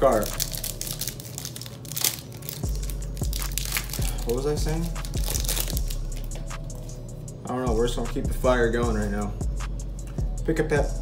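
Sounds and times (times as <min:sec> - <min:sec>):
foil pack crinkling and tearing: 0:00.0 - 0:06.4.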